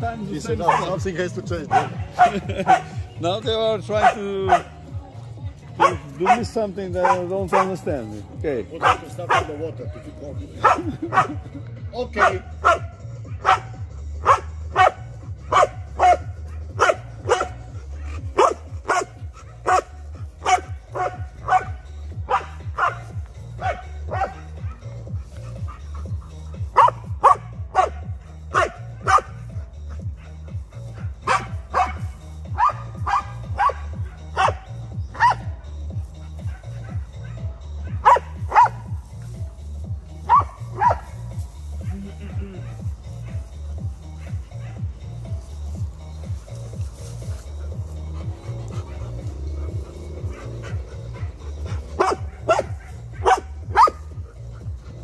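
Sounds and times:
music with low beat: 0.0s - 55.0s
dog barking: 0.4s - 3.0s, 4.0s - 4.8s, 5.7s - 8.0s, 8.8s - 11.4s, 12.2s - 35.6s, 36.2s - 39.0s, 40.2s - 45.4s, 48.1s - 54.7s.

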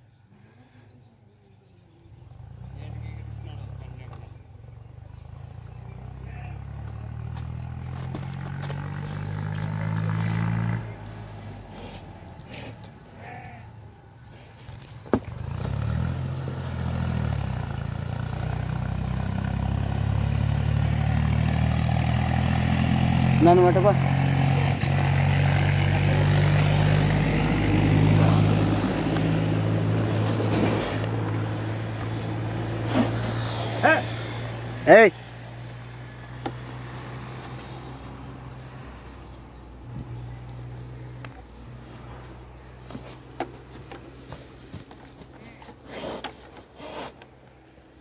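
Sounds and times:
man shouting: 33.8s - 34.2s.

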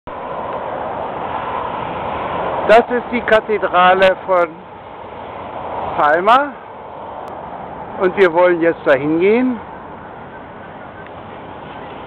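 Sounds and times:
road traffic noise: 0.1s - 12.0s.

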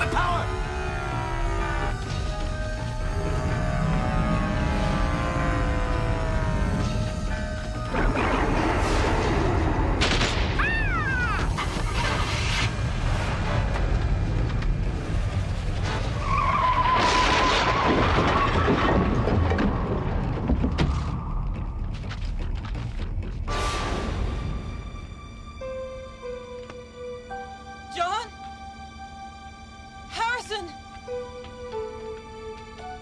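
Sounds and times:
dramatic orchestral music: 0.0s - 19.1s, 23.5s - 33.0s.

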